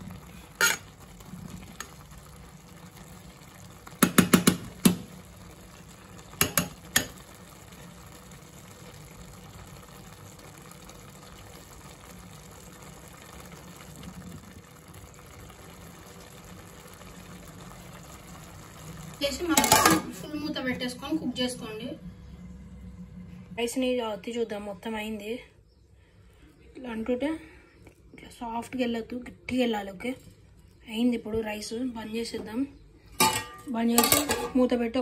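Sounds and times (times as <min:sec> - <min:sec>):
spoon knocking metal pot: 0:04.0 - 0:05.0, 0:06.4 - 0:07.2, 0:19.6 - 0:20.1, 0:33.2 - 0:34.6.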